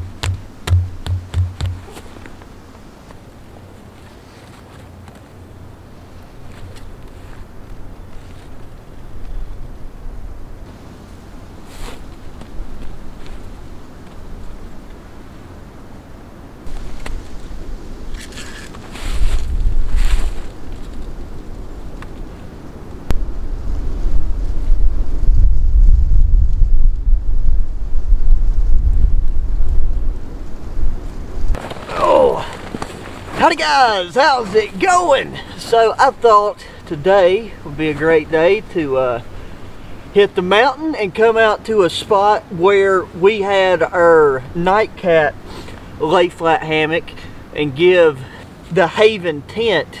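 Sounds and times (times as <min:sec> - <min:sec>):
wind buffeting microphone: 0:19.0 - 0:35.4.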